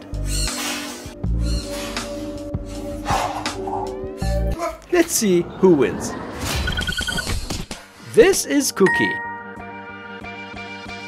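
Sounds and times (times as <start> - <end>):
background music: 0.0 - 6.6, 7.6 - 11.0.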